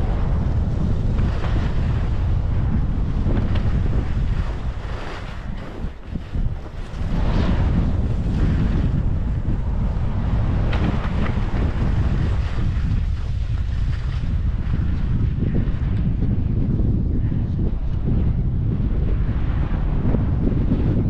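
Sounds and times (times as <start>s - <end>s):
wind buffeting microphone: 0.0s - 21.0s
skis sliding on snow: 4.1s - 8.5s.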